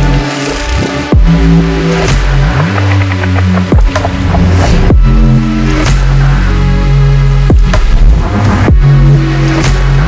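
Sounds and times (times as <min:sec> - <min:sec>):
chopped synth patterns: 0:00.0 - 0:10.0
heavy sustained bass notes: 0:00.0 - 0:10.0.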